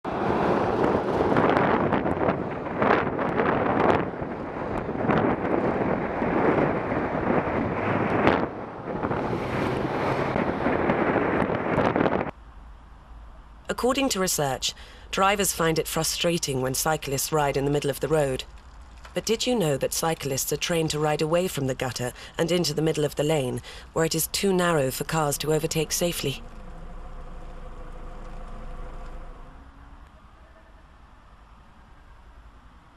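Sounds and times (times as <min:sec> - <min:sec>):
wind buffeting microphone: 0:00.1 - 0:12.3, 0:26.4 - 0:29.6
car engine running at low revs: 0:24.9 - 0:30.1.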